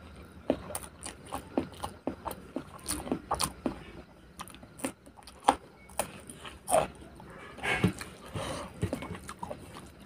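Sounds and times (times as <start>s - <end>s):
wet chewing: 0.0s - 10.0s
crunch of biting chilli: 0.5s - 10.0s.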